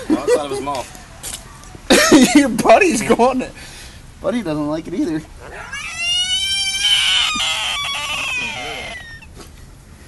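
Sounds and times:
frog distress scream: 0:05.5 - 0:09.3.

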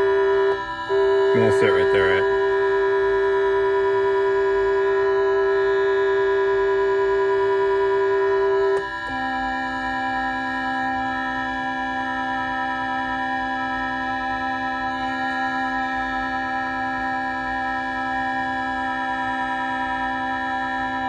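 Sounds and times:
electronic organ-like tones: 0:00.0 - 0:10.6
held electronic keyboard note: 0:00.0 - 0:21.0.

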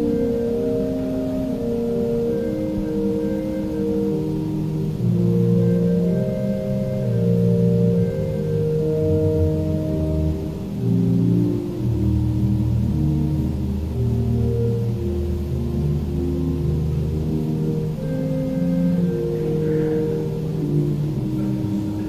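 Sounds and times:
organ chords: 0:00.0 - 0:22.0
deep organ bass line: 0:01.6 - 0:22.0.

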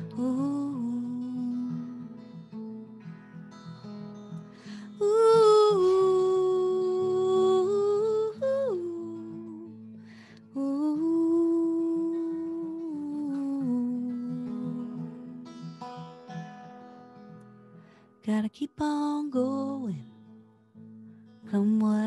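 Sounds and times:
woman singing wordless notes: 0:00.0 - 0:02.3, 0:04.7 - 0:09.9, 0:10.5 - 0:15.6, 0:18.2 - 0:20.1, 0:21.5 - 0:22.0
strummed acoustic guitar: 0:00.0 - 0:22.0.

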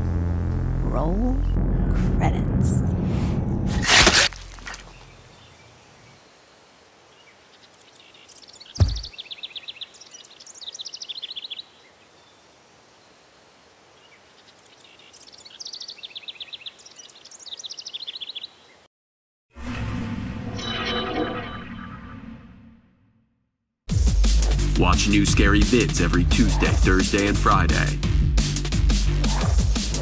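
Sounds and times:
songbird trilling: 0:07.2 - 0:12.4, 0:14.0 - 0:18.7
sharp knock: 0:08.8 - 0:09.1.

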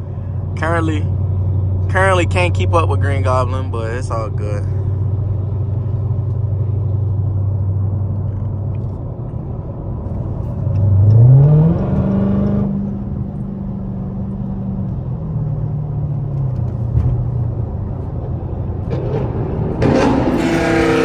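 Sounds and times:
car engine revving from inside cabin: 0:10.7 - 0:13.2.

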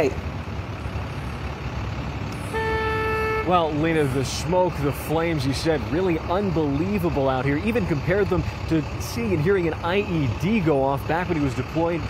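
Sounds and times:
road traffic rumble: 0:00.0 - 0:12.0
vehicle horn long note: 0:02.4 - 0:03.7.

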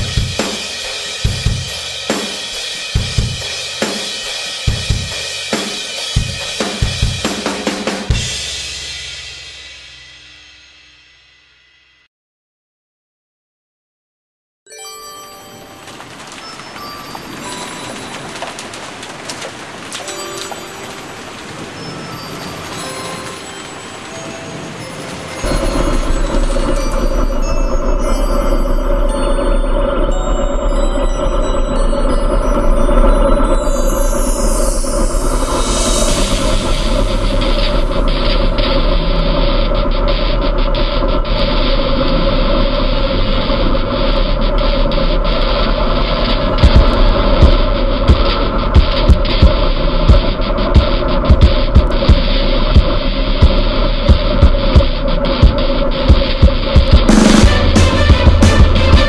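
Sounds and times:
loud music with heavy bass: 0:00.0 - 0:10.9, 0:35.2 - 0:59.0
noisy background: 0:15.6 - 0:59.0
motorcycle engine running: 0:36.2 - 0:59.0.

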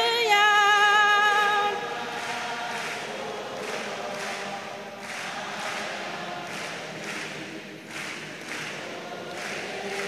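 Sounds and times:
congregation singing: 0:00.0 - 0:10.0.

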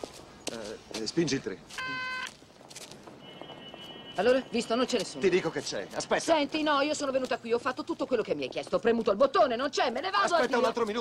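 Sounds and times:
intercom buzzer: 0:01.8 - 0:02.3.

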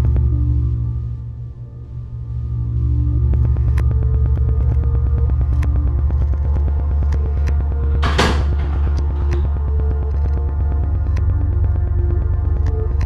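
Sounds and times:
deep bass drone: 0:00.0 - 0:13.0.

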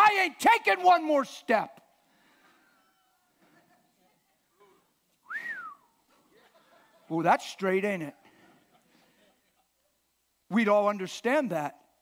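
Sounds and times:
person whistling: 0:05.2 - 0:06.0.

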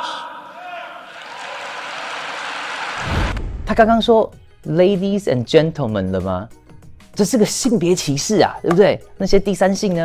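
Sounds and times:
audience applause: 0:01.0 - 0:03.3.

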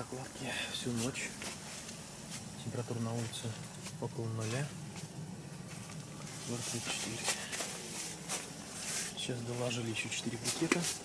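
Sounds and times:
soft footsteps on tent floor: 0:00.8 - 0:11.0
tent fabric rustling: 0:05.7 - 0:11.0.

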